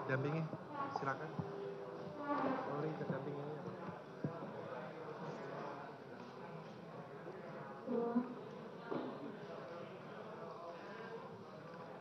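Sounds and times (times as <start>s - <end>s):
hearing room background noise: 0.0s - 12.0s.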